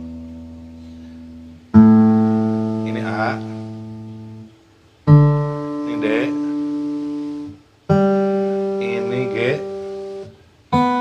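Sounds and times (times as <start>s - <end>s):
acoustic guitar strings plucked: 0.0s - 11.0s.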